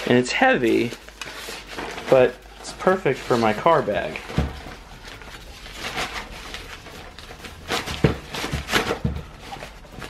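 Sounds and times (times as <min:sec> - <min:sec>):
rustling of bag: 0:00.0 - 0:10.0.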